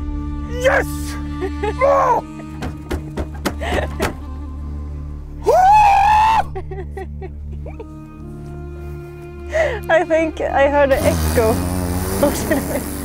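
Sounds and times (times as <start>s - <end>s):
background music: 0.0s - 13.0s
man yelling with echo: 0.5s - 1.0s.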